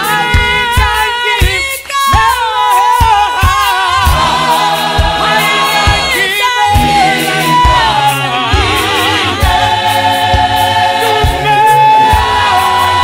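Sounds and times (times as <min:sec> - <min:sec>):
gospel choir singing in harmony: 0:00.0 - 0:13.0
steady low beat: 0:03.0 - 0:13.0.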